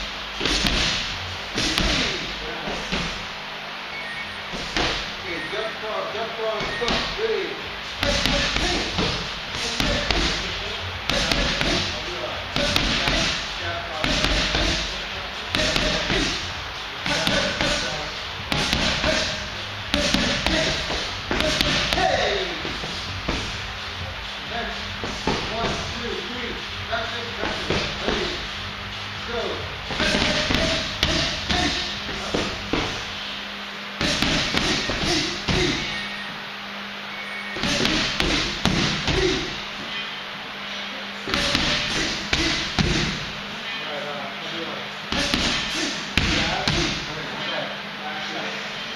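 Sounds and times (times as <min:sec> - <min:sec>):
punches and kicks on pads: 0:00.4 - 0:02.1, 0:12.6 - 0:13.4, 0:18.5 - 0:19.3, 0:19.9 - 0:23.5, 0:37.6 - 0:39.4.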